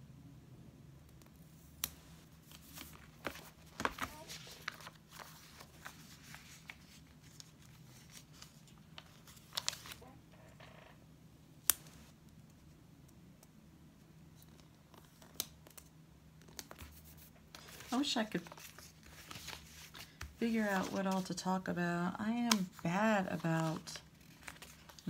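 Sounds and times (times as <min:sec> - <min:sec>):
paper pages rustling: 0:01.9 - 0:10.1, 0:14.4 - 0:21.6, 0:22.4 - 0:25.0.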